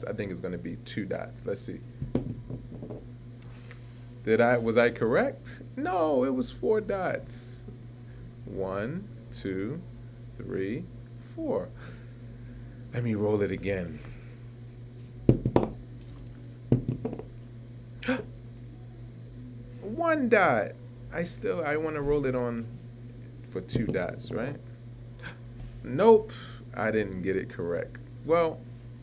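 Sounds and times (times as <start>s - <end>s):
faint steady hum: 0.0s - 29.0s
die bouncing on wooden table: 2.0s - 3.0s, 15.3s - 15.8s, 16.7s - 17.3s.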